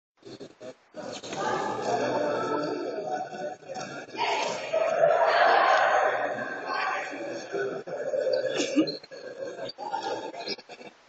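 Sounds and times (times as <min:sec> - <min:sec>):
echoing din of many voices: 0:00.2 - 0:11.0
children shouting: 0:04.0 - 0:07.5.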